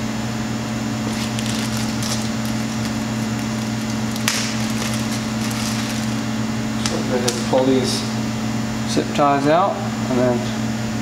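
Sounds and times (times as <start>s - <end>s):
steady low hum: 0.0s - 10.1s
plastic zip ties clicking: 1.1s - 7.4s.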